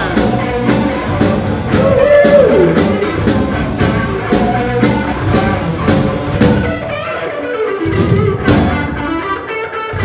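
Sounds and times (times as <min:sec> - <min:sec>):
blues rock band playing: 0:00.0 - 0:10.0.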